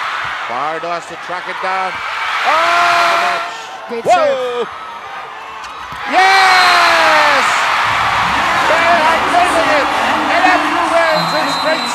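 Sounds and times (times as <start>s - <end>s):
crowd cheering: 0.0s - 11.9s.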